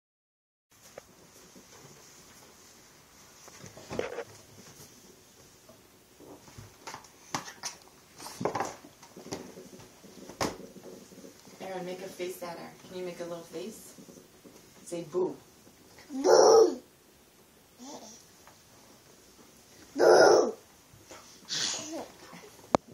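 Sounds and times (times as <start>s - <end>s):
baby squealing: 16.1s - 16.8s, 20.0s - 20.6s
baby laughing: 20.0s - 20.6s.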